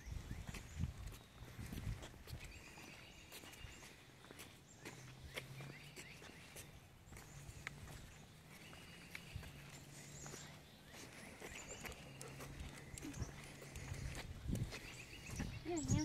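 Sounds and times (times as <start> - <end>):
light footsteps: 0.0 - 16.0.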